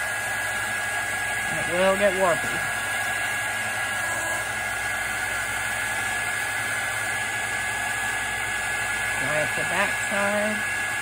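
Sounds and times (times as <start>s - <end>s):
heat tool fan blowing: 0.0s - 11.0s.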